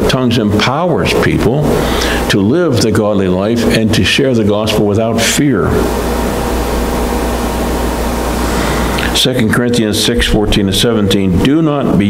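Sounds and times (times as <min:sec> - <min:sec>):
room noise hiss: 0:00.0 - 0:12.0
low hum: 0:05.6 - 0:12.0.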